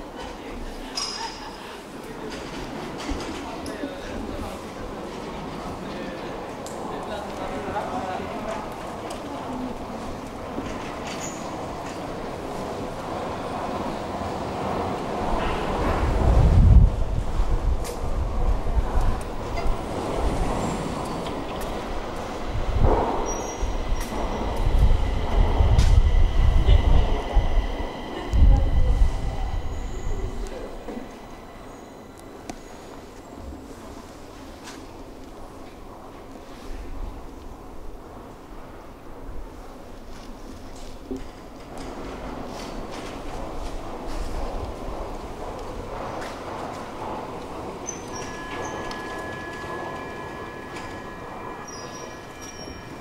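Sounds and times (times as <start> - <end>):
metro train rumbling: 0.0 - 53.0.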